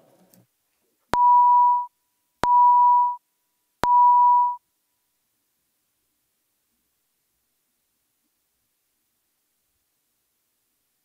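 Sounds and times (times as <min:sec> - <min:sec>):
electronic beeps: 0:01.2 - 0:03.2, 0:03.8 - 0:04.6.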